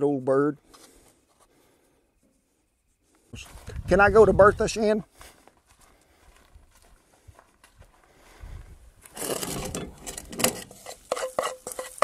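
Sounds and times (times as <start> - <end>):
spoon stirring and clinking in bowl: 10.7 - 12.0.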